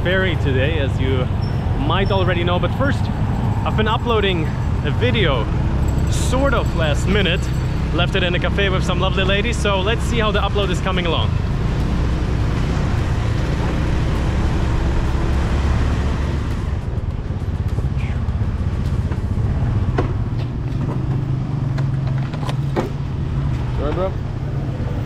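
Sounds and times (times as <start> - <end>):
vehicle engines rumbling: 0.0 - 25.0.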